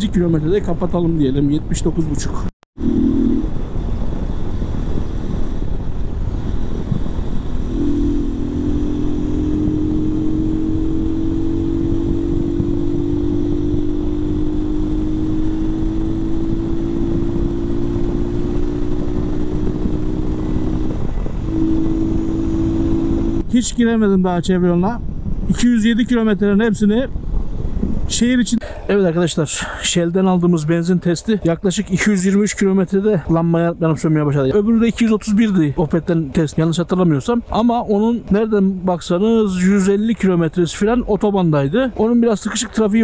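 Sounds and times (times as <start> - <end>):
wind rush on microphone: 0.0 - 43.0
motorcycle engine drone: 2.8 - 23.5.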